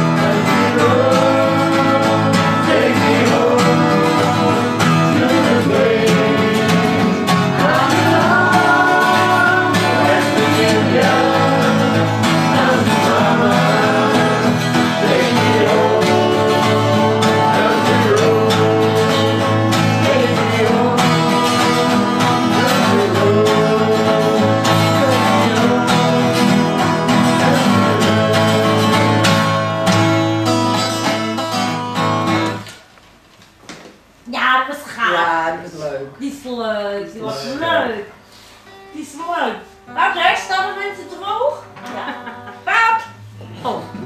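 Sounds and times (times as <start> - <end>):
people singing: 0.0 - 30.2
acoustic guitars strummed: 0.0 - 33.3.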